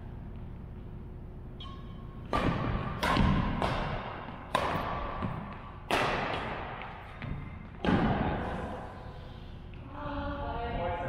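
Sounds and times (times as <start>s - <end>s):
rackets hitting shuttlecock: 1.6s - 8.8s.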